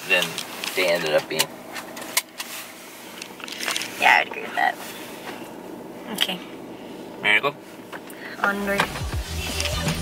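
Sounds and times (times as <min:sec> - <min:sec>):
crackling handling noises: 0:00.0 - 0:05.7.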